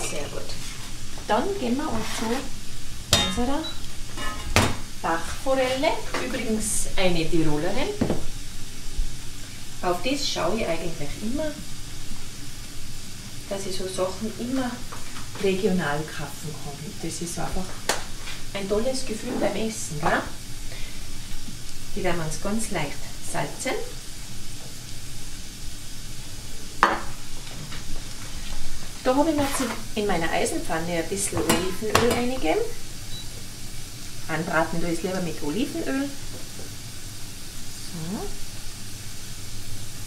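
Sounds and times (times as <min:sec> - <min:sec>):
food sizzling in a pan: 0:00.0 - 0:40.0.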